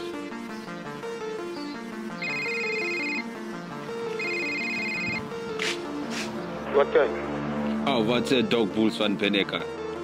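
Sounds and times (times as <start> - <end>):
background music: 0.0 - 10.0
electronic phone ringing: 2.1 - 5.4.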